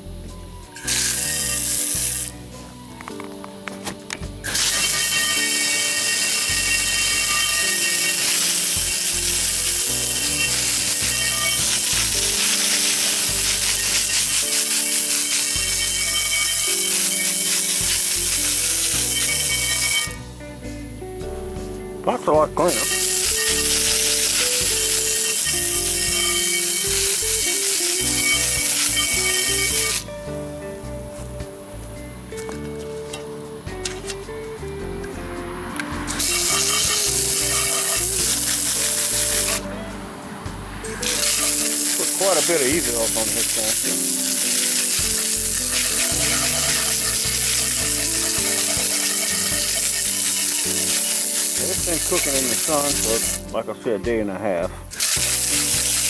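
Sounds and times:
background music: 0.0s - 56.0s
hose nozzle spraying water on skillet: 0.8s - 2.4s, 4.4s - 20.2s, 22.6s - 30.1s, 36.1s - 39.6s, 41.0s - 53.5s, 54.9s - 56.0s.

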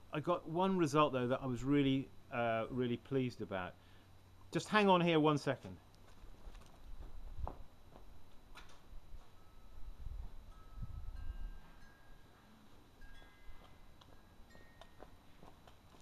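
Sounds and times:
high chime-like ringing: 9.4s - 15.1s.

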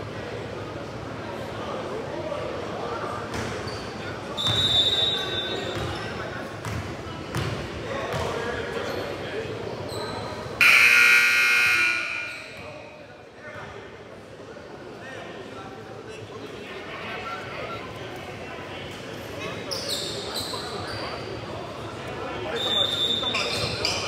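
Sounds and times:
voices echoing: 1.4s - 14.2s, 15.1s - 24.0s
scoreboard buzzer: 10.6s - 12.6s.

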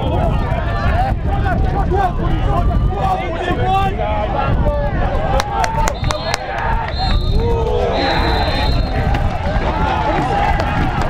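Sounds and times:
wind rumble on microphone: 0.0s - 11.0s
people shouting: 4.3s - 11.0s.

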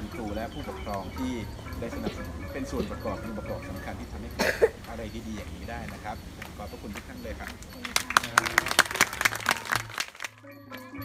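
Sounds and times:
wooden xylophones struck: 0.0s - 9.6s
classical ensemble playing: 0.0s - 9.8s
applause: 5.8s - 11.0s.

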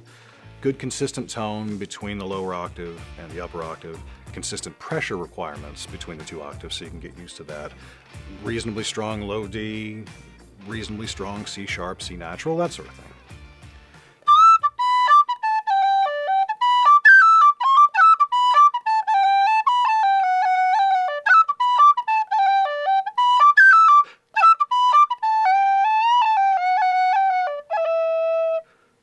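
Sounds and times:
tin whistle melody: 14.2s - 28.8s.

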